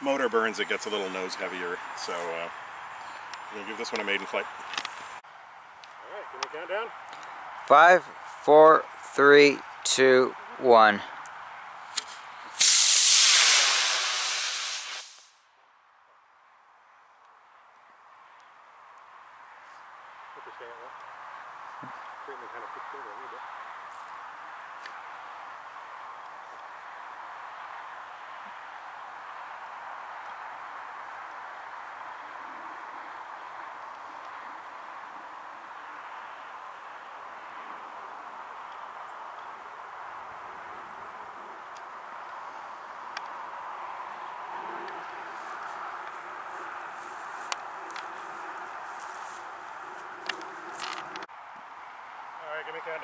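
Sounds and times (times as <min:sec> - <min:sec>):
rustles: 0:00.0 - 0:09.8, 0:18.3 - 0:40.2, 0:41.5 - 0:51.3
outdoor background hiss: 0:00.0 - 0:53.0.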